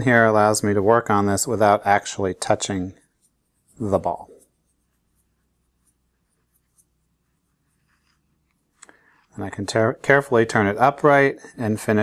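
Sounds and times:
soft brush strokes: 0:00.0 - 0:12.0.

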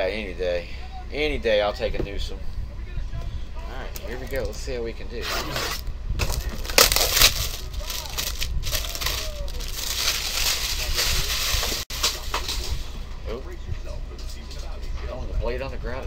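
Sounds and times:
cardboard box rustling: 0:05.6 - 0:11.8.

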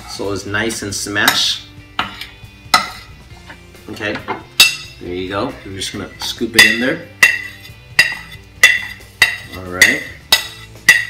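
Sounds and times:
metal spoon scraping a plate: 0:02.0 - 0:03.2, 0:06.2 - 0:11.0.

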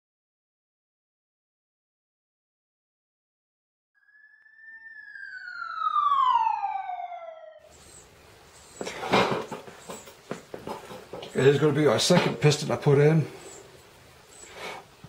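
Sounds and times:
siren-like tone winding down: 0:04.0 - 0:08.0.

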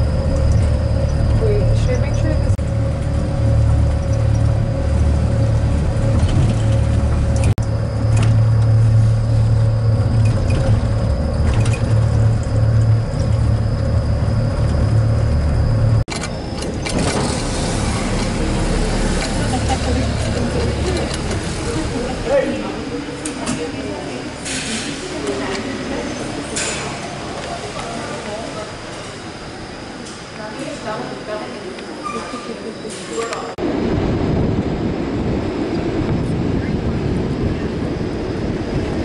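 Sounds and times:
rail car rumbling on track: 0:00.0 - 0:39.0
voices: 0:01.4 - 0:02.6, 0:18.1 - 0:33.6.

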